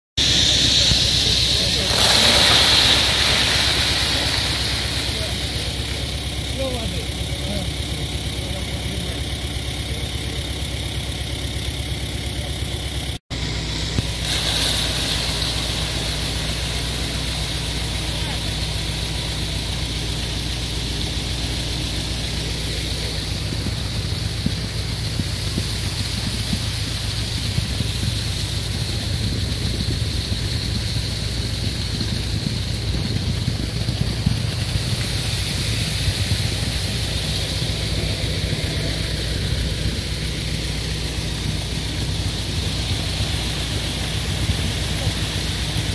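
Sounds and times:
concrete pouring down chute: 0.2s - 13.2s, 14.0s - 45.9s
diesel engine running: 0.2s - 45.9s.

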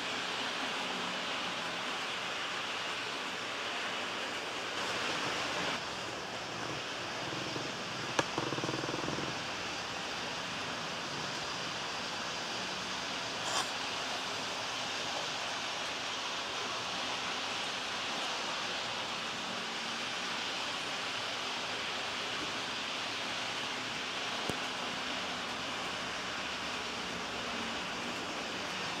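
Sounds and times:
model train whirring on track: 0.0s - 29.0s.

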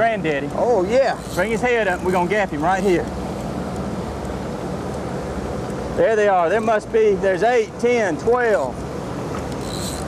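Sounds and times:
boat motor idling: 0.0s - 6.9s.

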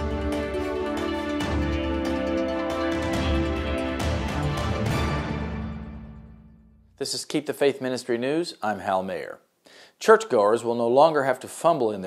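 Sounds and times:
news theme music: 0.0s - 6.9s.

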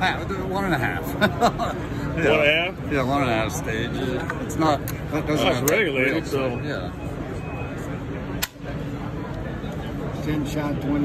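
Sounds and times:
crowd chatter: 0.0s - 11.0s
sharp click: 8.4s - 8.6s.

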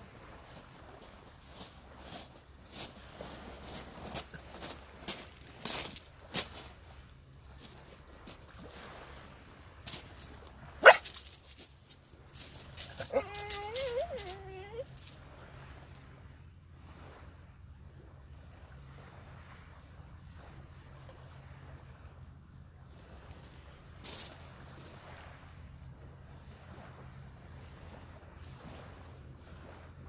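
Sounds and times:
rustles and clicks: 9.9s - 15.2s
dog whining: 12.8s - 15.1s.

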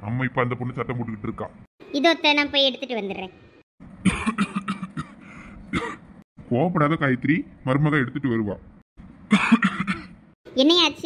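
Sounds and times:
person coughing: 4.0s - 6.1s, 9.3s - 10.2s.

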